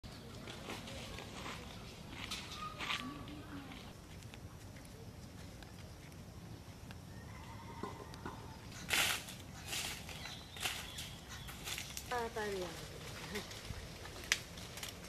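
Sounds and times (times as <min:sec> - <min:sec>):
footsteps on dry leaves: 0:00.4 - 0:04.0, 0:08.8 - 0:15.0.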